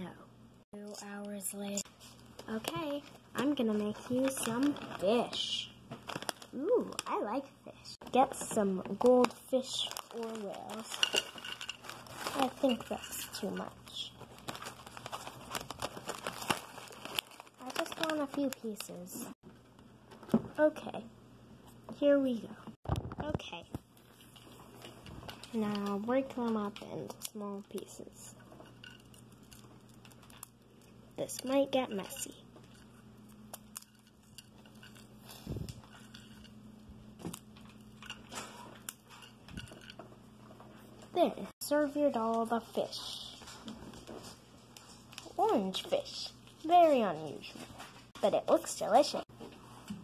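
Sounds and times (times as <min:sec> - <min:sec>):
crackers crunching: 0:02.2 - 0:07.2, 0:08.9 - 0:18.9, 0:27.1 - 0:40.1
plastic snack bag crinkling: 0:02.3 - 0:07.4, 0:08.2 - 0:19.1, 0:28.8 - 0:36.5.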